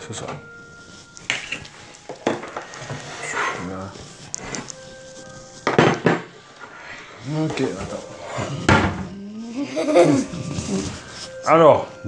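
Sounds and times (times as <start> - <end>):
bowls clattering: 0.3 - 6.7.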